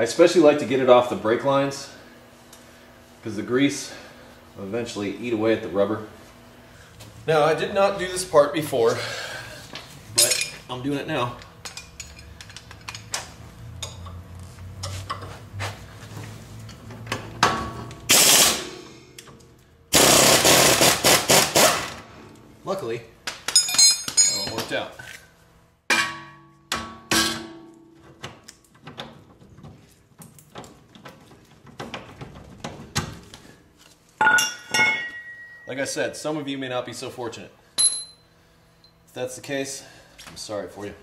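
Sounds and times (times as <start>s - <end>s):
tool rattling burst: 18.1s - 18.7s, 19.9s - 22.0s
ringing metal clinks: 23.6s - 24.6s, 34.2s - 35.8s, 37.8s - 38.2s.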